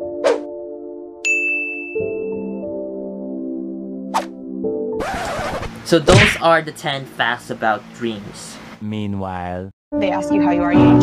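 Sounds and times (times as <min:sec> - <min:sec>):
background music chords: 0:00.0 - 0:05.0
bright ding: 0:01.2 - 0:02.3.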